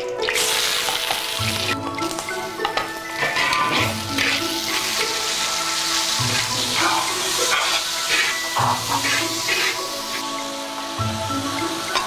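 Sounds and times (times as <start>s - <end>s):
background music with low pulse: 0.0s - 12.0s
pork sizzling in hot oil: 0.2s - 12.0s
spatula stirring in wok: 3.1s - 10.6s.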